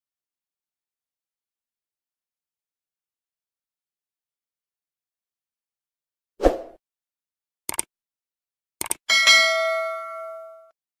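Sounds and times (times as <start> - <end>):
notification bell ding: 9.1 - 10.8.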